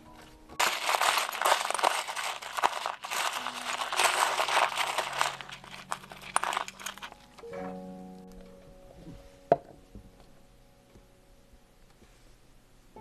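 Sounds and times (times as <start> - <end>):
glass and pebbles clattering: 0.6 - 7.4.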